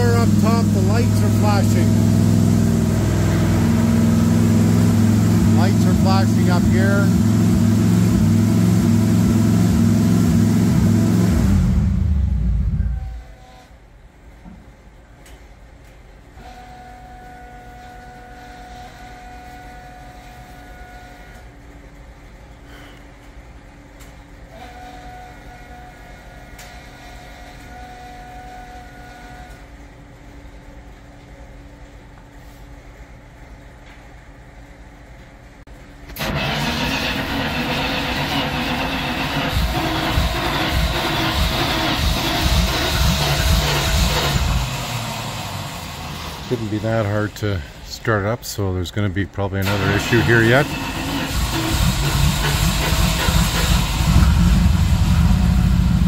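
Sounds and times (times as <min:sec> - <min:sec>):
snow vehicle engine running: 0:00.0 - 0:12.4, 0:36.2 - 0:47.4, 0:49.7 - 0:56.0.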